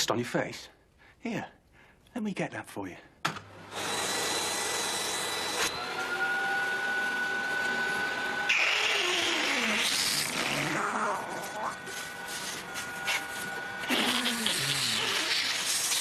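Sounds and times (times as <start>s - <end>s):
vacuum cleaner running: 3.6s - 16.0s.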